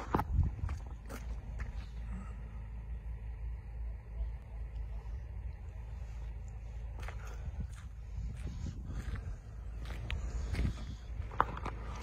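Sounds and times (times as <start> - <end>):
footsteps on muddy ground: 0.0 - 2.3, 4.8 - 12.0
low rumble: 0.0 - 12.0.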